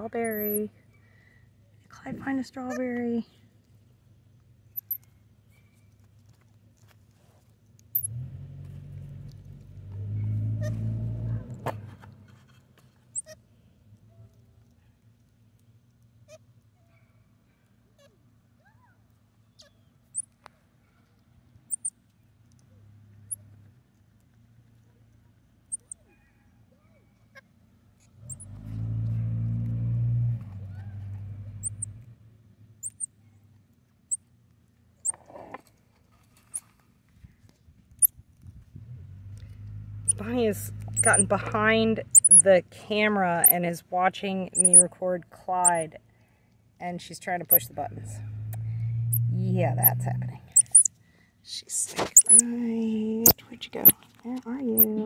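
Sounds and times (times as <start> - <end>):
road vehicles passing: 0.0 - 2.9, 8.0 - 14.1, 21.2 - 26.0, 27.7 - 33.7, 38.5 - 55.0
faint high chirps and ticks: 3.6 - 6.4, 7.8 - 8.2, 19.1 - 23.6, 24.2 - 26.1, 32.8 - 33.2, 42.1 - 42.5, 44.6 - 44.8, 50.5 - 51.0, 52.2 - 52.4.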